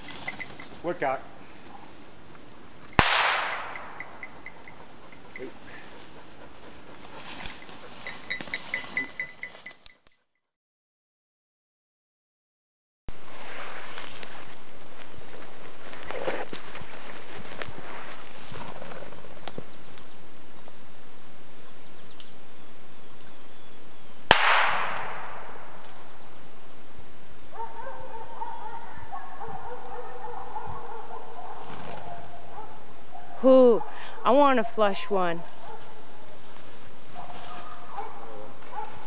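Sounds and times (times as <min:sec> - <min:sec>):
ringing held tones: 0:00.0 - 0:00.7, 0:03.6 - 0:05.5, 0:08.0 - 0:10.1
gunshot: 0:03.0 - 0:04.0, 0:24.3 - 0:25.6.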